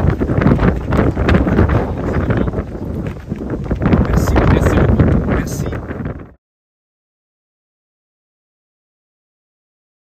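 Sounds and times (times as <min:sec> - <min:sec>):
wind buffeting microphone: 0:00.0 - 0:06.4.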